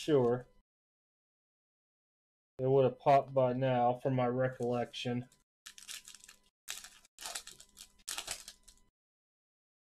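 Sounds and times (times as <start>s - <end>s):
foil wrapper crinkling: 5.7s - 8.9s.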